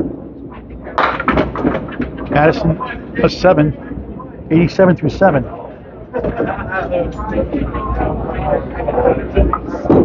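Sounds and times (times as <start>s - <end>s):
bowling pins and balls clattering: 0.0s - 3.0s, 6.2s - 8.0s
bowling hall background noise: 0.0s - 10.0s.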